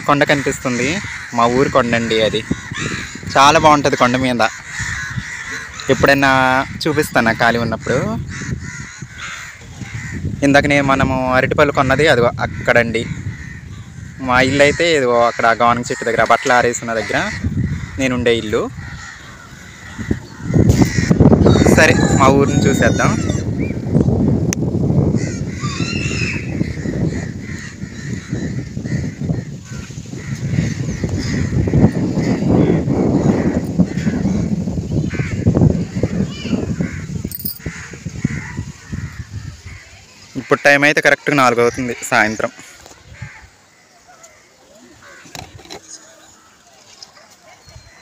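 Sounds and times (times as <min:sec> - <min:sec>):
crows cawing: 0:00.0 - 0:11.1, 0:11.7 - 0:47.6
wind rumble on microphone: 0:00.0 - 0:16.2, 0:17.0 - 0:40.3, 0:42.8 - 0:43.6
birds calling: 0:00.0 - 0:48.0.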